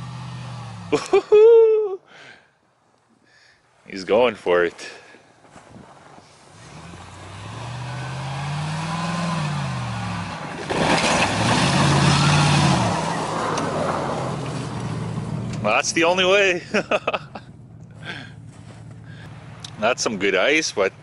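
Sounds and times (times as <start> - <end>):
truck engine revving: 0.0 - 1.1, 6.5 - 19.8
ice breaking and water splashing: 10.5 - 14.1.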